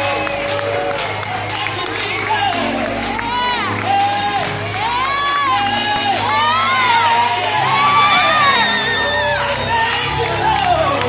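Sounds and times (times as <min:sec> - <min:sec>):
congregation cheering and shouting: 0:00.0 - 0:11.0
gospel choir singing: 0:00.0 - 0:11.0
low instrumental backing: 0:00.0 - 0:11.0.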